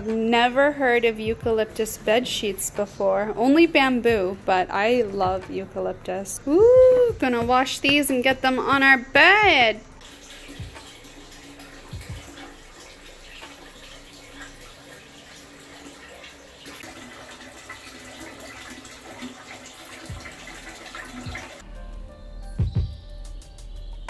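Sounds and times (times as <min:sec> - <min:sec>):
soft low thumps: 0:01.2 - 0:01.6, 0:05.2 - 0:05.5, 0:06.5 - 0:08.1, 0:11.9 - 0:12.4.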